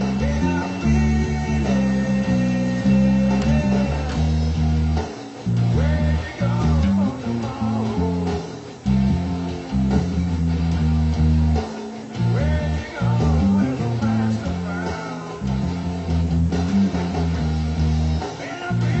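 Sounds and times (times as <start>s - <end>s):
electric bass guitar plucked: 0.0s - 19.0s.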